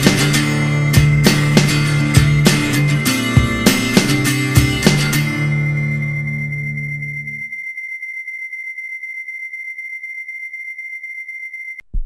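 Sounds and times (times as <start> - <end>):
strummed guitar chord ringing: 0.0 - 7.4
thin steady high tone: 5.1 - 11.8.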